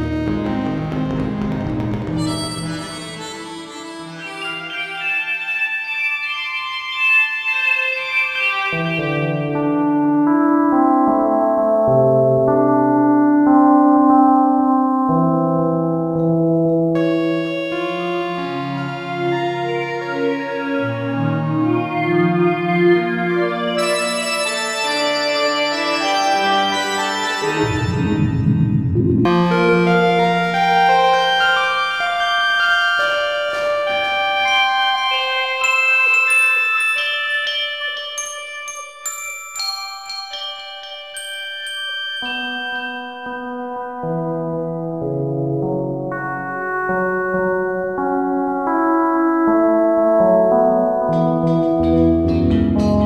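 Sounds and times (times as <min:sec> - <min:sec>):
synthesizer music: 0:00.0 - 0:41.8, 0:43.7 - 0:53.0.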